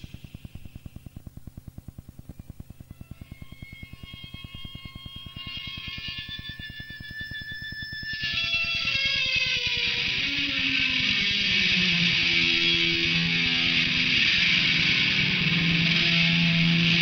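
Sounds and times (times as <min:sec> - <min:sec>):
distorted electric guitar: 0:00.0 - 0:17.0
effects-laden guitar tones: 0:00.0 - 0:17.0.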